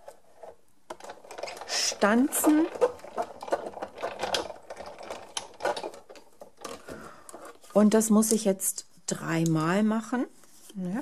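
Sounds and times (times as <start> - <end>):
small mechanical clicks and rattles: 0.4 - 7.6
die-cutting machine cranking: 0.9 - 7.0.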